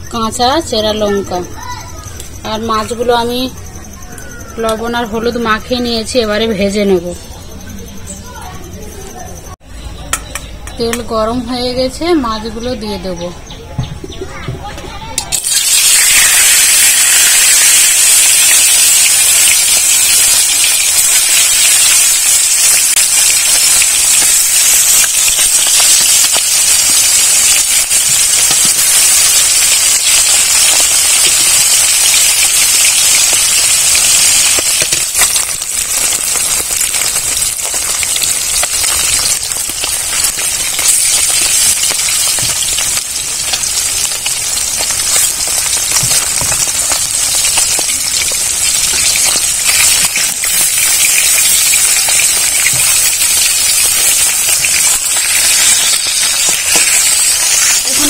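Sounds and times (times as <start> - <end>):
fish sizzling in hot oil: 15.3 - 58.0.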